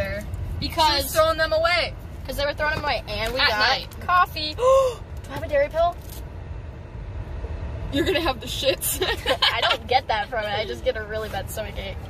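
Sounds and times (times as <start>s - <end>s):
car engine running: 0.0s - 12.0s.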